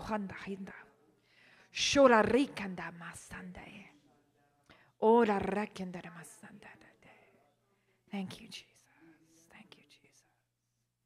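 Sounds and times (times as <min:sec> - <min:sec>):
woman whispering a prayer: 0:00.0 - 0:10.5.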